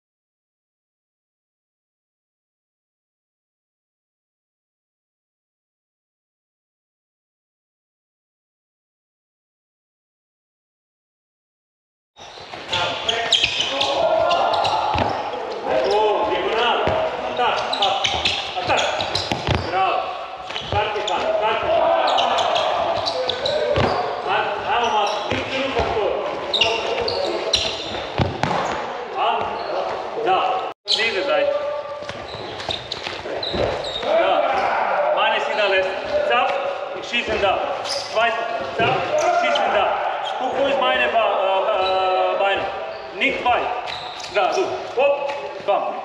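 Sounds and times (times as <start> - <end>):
indistinct voices: 12.5 - 32.5, 33.1 - 46.0
balls bouncing on wooden floor: 14.0 - 17.2, 17.8 - 19.7, 20.5 - 24.1, 25.3 - 28.8.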